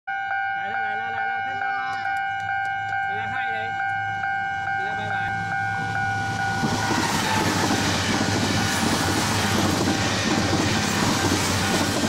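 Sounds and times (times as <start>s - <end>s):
level crossing warning bell: 0.1s - 8.8s.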